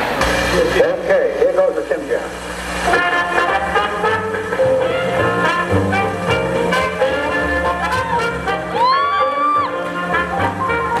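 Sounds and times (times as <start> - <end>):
voice over sound system: 0.4 - 2.5
swing band music: 2.8 - 11.0.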